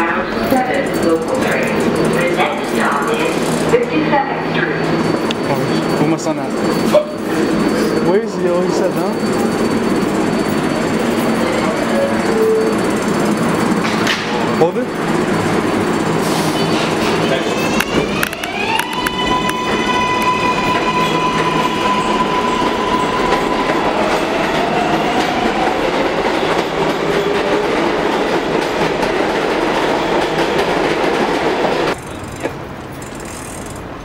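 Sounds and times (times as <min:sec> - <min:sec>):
street noise: 0:00.0 - 0:34.0
wheels rumbling on rails: 0:00.0 - 0:34.0
train motor whine: 0:15.3 - 0:25.9.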